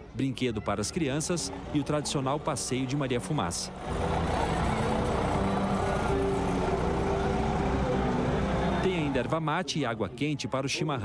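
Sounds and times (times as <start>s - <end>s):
road train engine running: 1.3s - 9.3s
tune of held notes: 3.8s - 9.4s.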